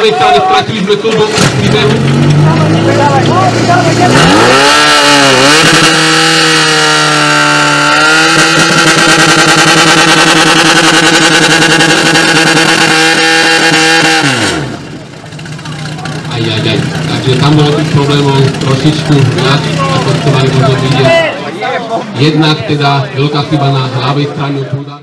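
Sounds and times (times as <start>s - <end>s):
pump engine revving: 1.2s - 21.1s.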